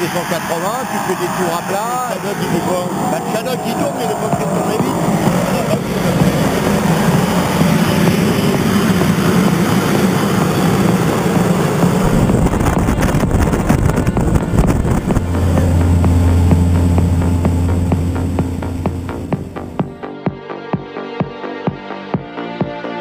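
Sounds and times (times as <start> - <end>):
light aircraft engine and propeller: 0.0 - 20.0
electronic music with steady beat: 3.8 - 8.6, 14.2 - 20.3.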